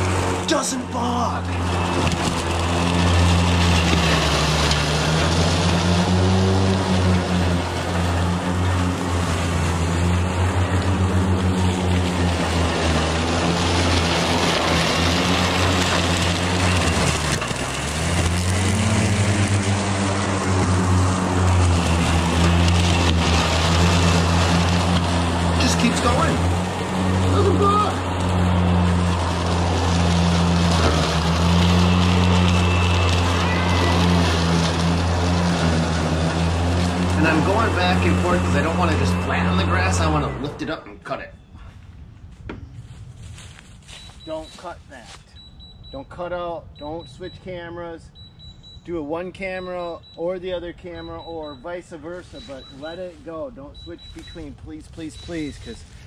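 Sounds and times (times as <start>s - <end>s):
mower blades cutting wet grass: 0.0s - 40.8s, 52.2s - 53.1s
electric mower motors humming: 0.0s - 40.9s.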